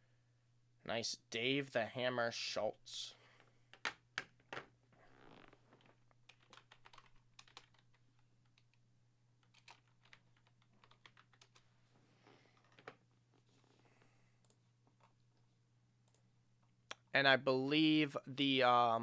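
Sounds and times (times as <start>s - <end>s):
typing on computer keyboard: 6.3s - 8.8s, 9.4s - 11.6s.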